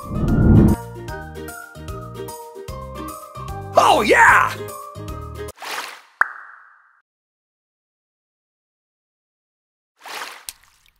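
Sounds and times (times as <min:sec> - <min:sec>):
brief rushing noise: 0:00.0 - 0:00.8.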